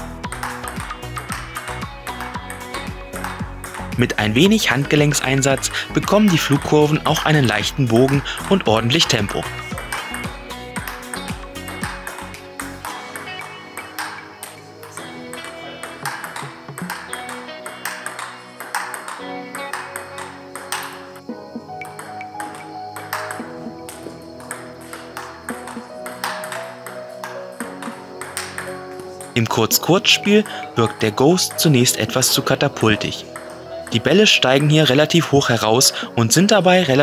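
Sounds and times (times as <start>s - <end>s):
background music: 0.0s - 37.0s
table tennis ball clicking: 0.3s - 29.4s.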